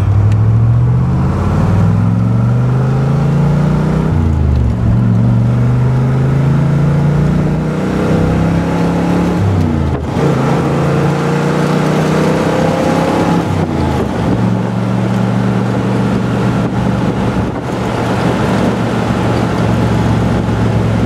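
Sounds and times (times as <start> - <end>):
car engine accelerating through gears: 0.0 - 21.0.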